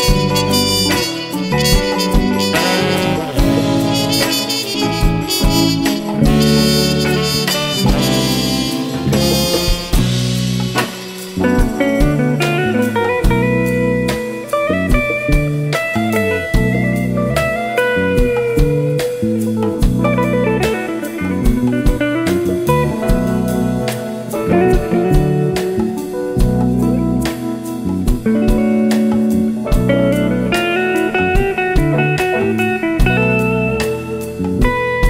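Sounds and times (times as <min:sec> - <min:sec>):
drum kit beat: 0:00.0 - 0:35.0
electric bass: 0:00.0 - 0:35.0
electric guitar melody: 0:00.0 - 0:35.0.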